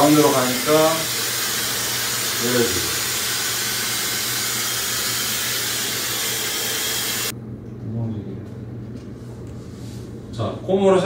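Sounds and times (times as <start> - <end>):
hair dryer blowing: 0.0 - 7.3.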